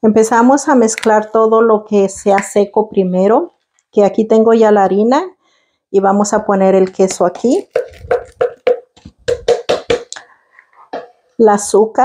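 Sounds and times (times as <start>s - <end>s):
plastic canister shaken knocking: 7.6s - 10.2s.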